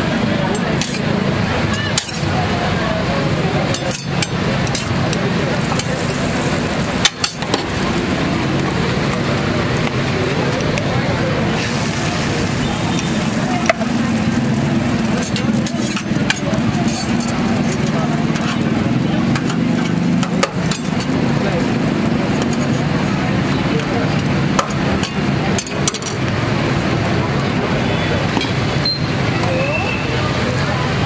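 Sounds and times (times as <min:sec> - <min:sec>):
street traffic drone: 0:00.0 - 0:31.0
egg sizzling on a griddle: 0:05.6 - 0:08.7, 0:11.6 - 0:18.9.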